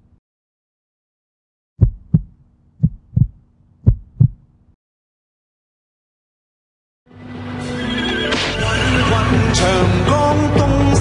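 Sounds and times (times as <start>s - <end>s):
heartbeat thumps: 1.8s - 4.5s.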